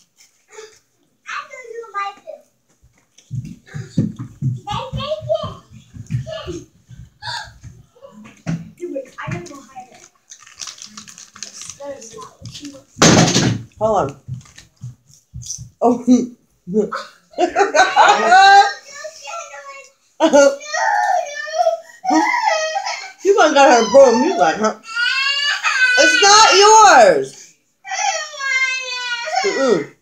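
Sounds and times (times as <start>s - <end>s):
eating and handling noises: 0.0s - 4.5s, 5.2s - 16.0s
crinkling snack bag: 9.4s - 13.4s, 14.3s - 14.8s.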